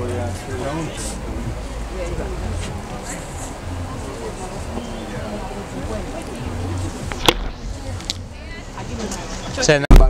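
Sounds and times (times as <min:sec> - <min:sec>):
faint murmuring voices: 0:00.0 - 0:09.9.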